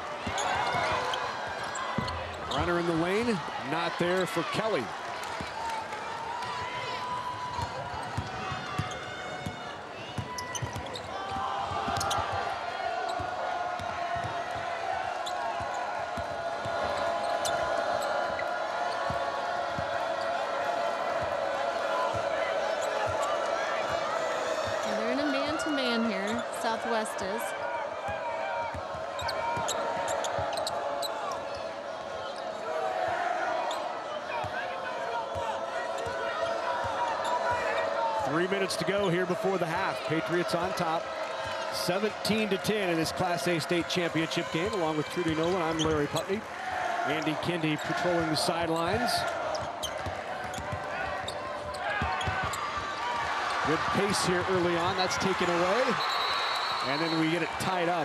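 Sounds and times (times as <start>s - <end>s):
arena crowd hum: 0.0s - 58.0s
sneakers squeaking on floor: 0.2s - 2.9s, 7.5s - 12.4s, 24.7s - 26.5s, 28.1s - 31.7s, 47.8s - 52.8s.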